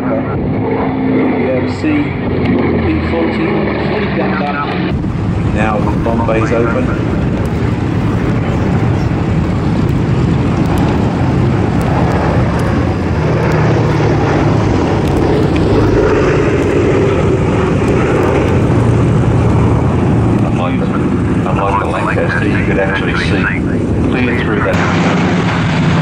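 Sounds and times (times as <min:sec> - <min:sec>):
propeller aircraft engines droning: 0:00.0 - 0:26.0.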